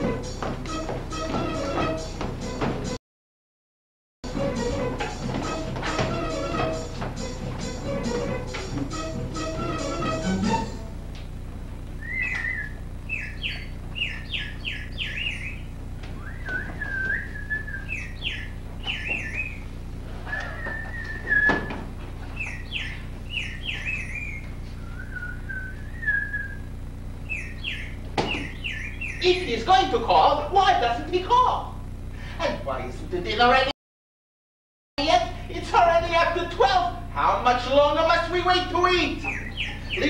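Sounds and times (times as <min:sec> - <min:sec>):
songbird chirping and whistling: 0:12.0 - 0:29.5, 0:39.1 - 0:40.0
single thump: 0:28.2 - 0:28.5.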